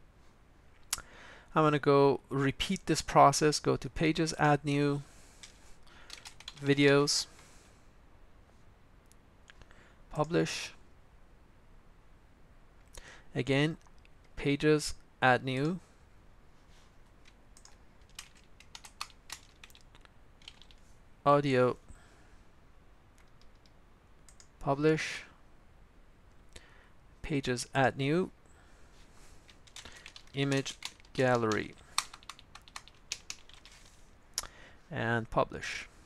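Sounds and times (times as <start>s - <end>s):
computer keyboard typing: 5.4s - 7.0s, 17.2s - 20.8s, 23.2s - 23.7s, 29.5s - 34.0s.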